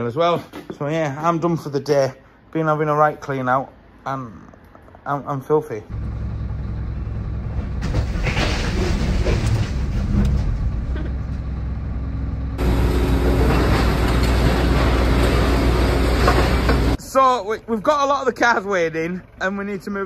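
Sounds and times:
vehicle engine droning: 5.9 - 20.0
rattles and knocks: 7.4 - 15.5.

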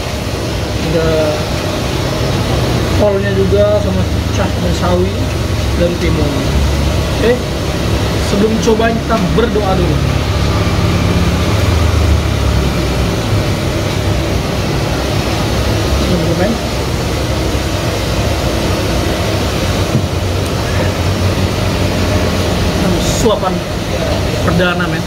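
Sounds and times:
constant hiss: 0.0 - 25.0
low engine rumble: 0.0 - 25.0.

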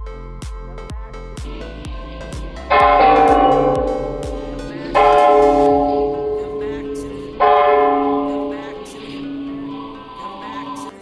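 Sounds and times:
large brass bell ringing: 2.7 - 10.4.

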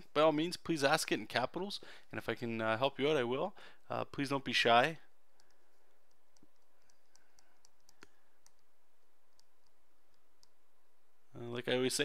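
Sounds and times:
low steady hiss: 0.0 - 12.0
small clicks: 5.4 - 10.6.

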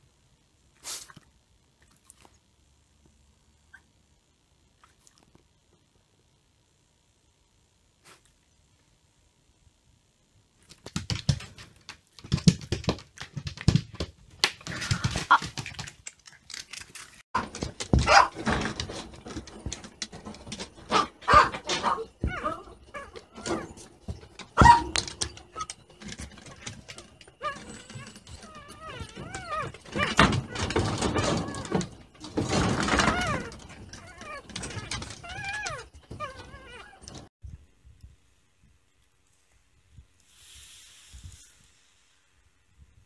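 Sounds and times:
puppies whimpering and squealing: 26.4 - 31.9, 32.5 - 37.2.

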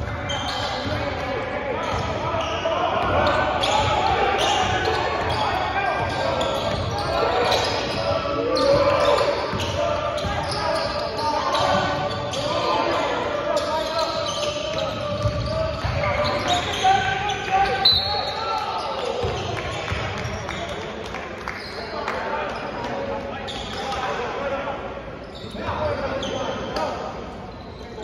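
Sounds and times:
voices calling out: 0.0 - 19.4
shoe squeak: 0.1 - 1.2, 1.8 - 19.5, 23.4 - 24.1, 25.2 - 26.8, 27.4 - 28.0
basketball bouncing on court: 14.7 - 16.8.

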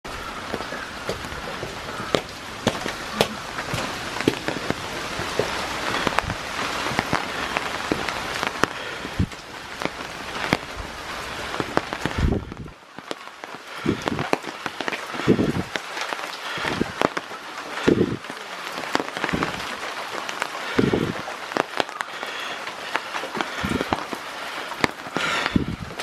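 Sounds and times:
steady rain: 0.0 - 26.0
raindrops ticking close by: 0.1 - 26.0.

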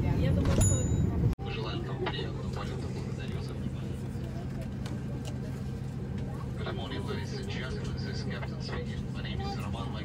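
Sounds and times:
airliner cabin hum: 0.0 - 10.0
murmur of passengers' voices: 0.0 - 10.0.

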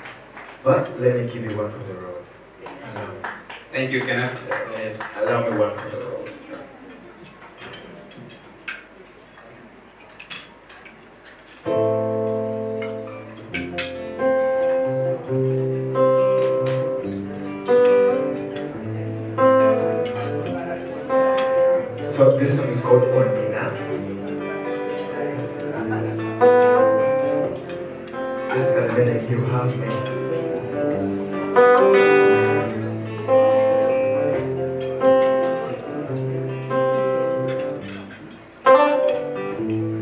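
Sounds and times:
acoustic guitar playing: 11.6 - 40.0.

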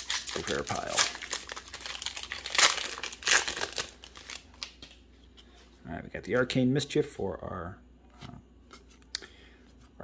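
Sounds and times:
foil wrapper crinkling: 0.0 - 5.0.

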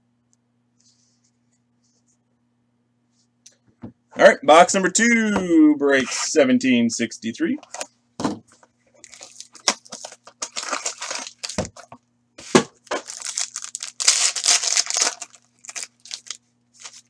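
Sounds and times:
foil wrapper ripping and crinkling: 9.0 - 11.9, 12.8 - 17.0.

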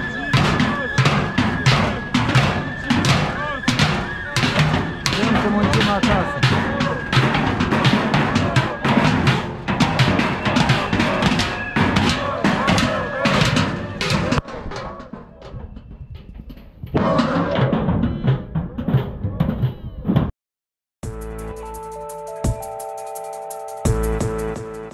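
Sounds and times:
sticks beating on metal barrels: 0.0 - 15.3.

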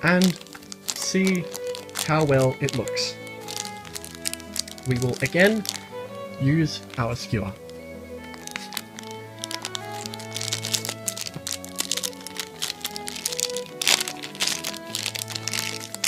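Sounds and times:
background music: 0.0 - 16.0
plastic bag crinkling: 0.0 - 16.0.

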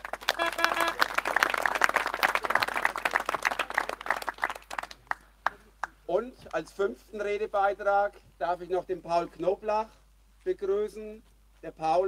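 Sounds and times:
crowd clapping: 0.0 - 6.0.

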